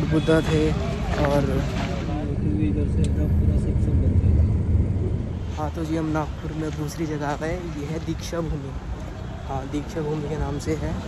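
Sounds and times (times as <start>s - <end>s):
motor vehicle rumble: 0.0s - 9.8s.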